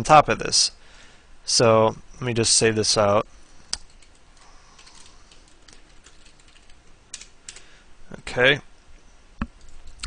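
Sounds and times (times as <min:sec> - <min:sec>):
computer keyboard typing: 0:03.8 - 0:07.7, 0:09.6 - 0:10.0.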